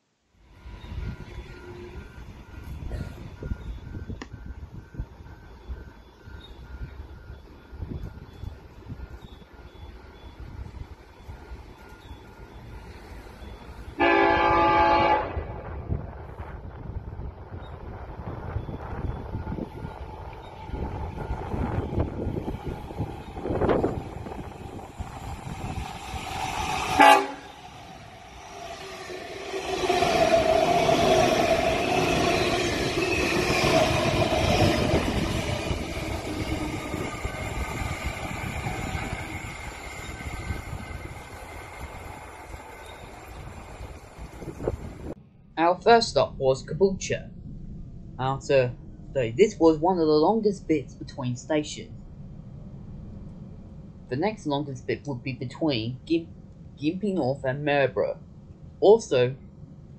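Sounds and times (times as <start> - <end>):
train passing with rumble: 0.3 - 55.1, 58.1 - 58.8, 59.4 - 59.9
train horn: 13.9 - 16.0, 26.8 - 35.2.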